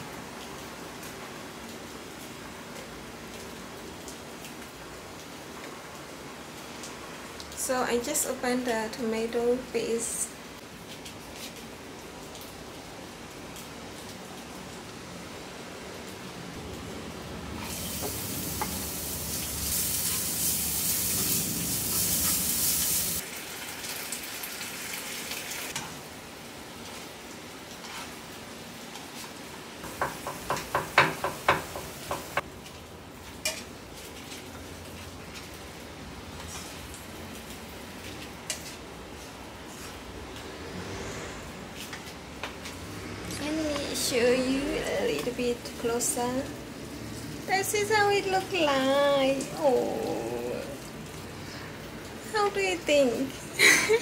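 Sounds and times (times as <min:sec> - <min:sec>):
food sizzling in a frying pan: 0:16.0 - 0:54.0
utensil tapping a pan: 0:29.8 - 0:32.4.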